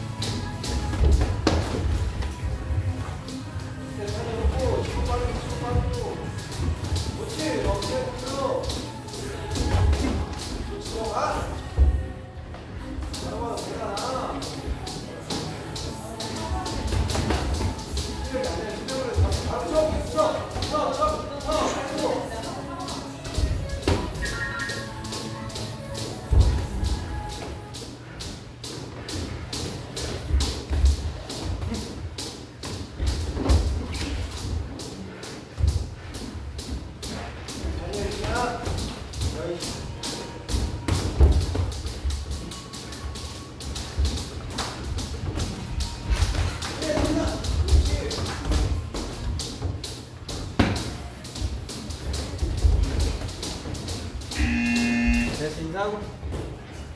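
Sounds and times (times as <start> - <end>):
music playing: 0.0 - 32.3, 49.4 - 56.0
footwork on ring canvas: 25.1 - 56.9
electronic buzzer tone: 54.4 - 55.4.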